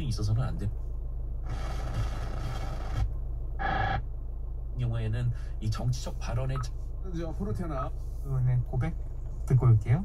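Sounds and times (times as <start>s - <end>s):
steady low hum: 0.0s - 10.0s
car radio static hiss: 1.4s - 4.0s.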